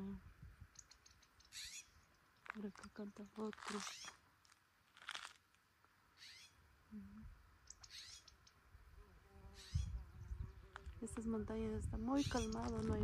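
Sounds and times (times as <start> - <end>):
songbird singing: 0.0 - 4.3, 5.9 - 13.0.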